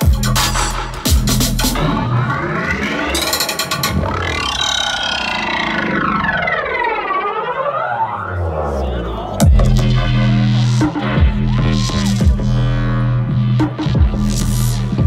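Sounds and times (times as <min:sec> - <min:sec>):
electronic bass music: 0:00.0 - 0:15.0
sweeping synth tones: 0:01.8 - 0:13.5.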